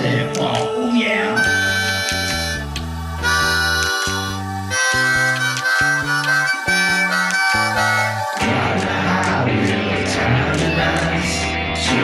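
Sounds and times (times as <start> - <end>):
harmonica playing held notes: 1.3 - 8.4
bass line: 1.4 - 12.0.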